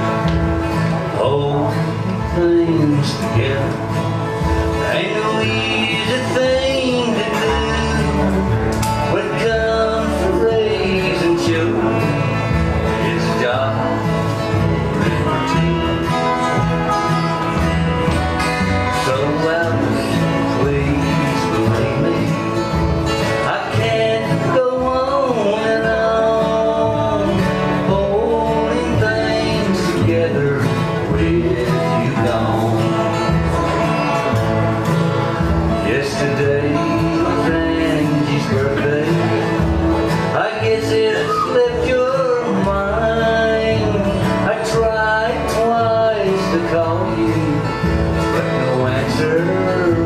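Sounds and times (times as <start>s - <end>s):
strummed acoustic guitars: 0.0s - 50.0s
upright bass: 0.0s - 50.0s.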